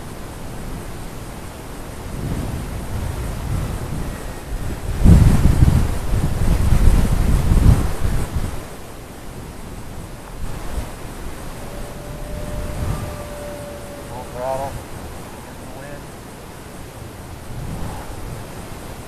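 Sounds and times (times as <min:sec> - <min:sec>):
wind buffeting microphone: 0:00.0 - 0:19.0
model plane motor whine: 0:10.6 - 0:15.8.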